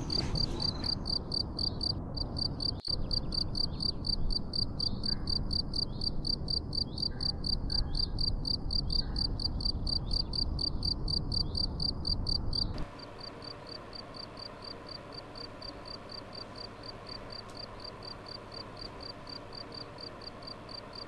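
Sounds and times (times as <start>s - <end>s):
crickets chirping: 0.0s - 21.0s
low night ambience rumble: 0.0s - 21.0s.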